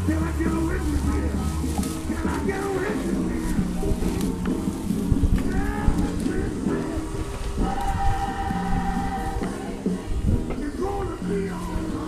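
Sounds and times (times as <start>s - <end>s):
music with long low notes: 0.0s - 12.0s.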